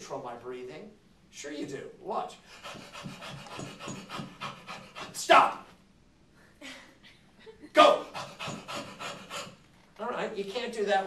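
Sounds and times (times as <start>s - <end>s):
man panting rapidly: 2.4s - 5.2s, 8.0s - 9.6s.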